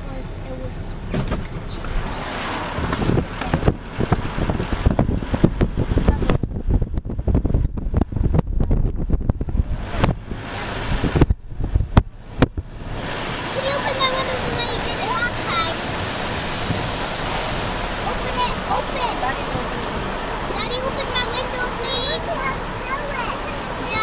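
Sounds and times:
car road rumble: 0.0 - 24.0
wind buffeting microphone: 0.9 - 24.0.

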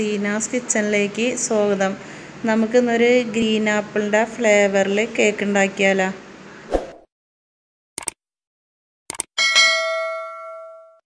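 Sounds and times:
bell-like metallic ring: 9.4 - 11.0.

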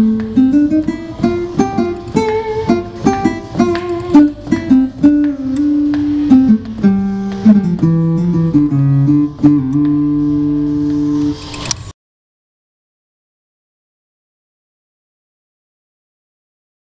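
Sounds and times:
digital piano plucked-string voice: 0.0 - 11.4.

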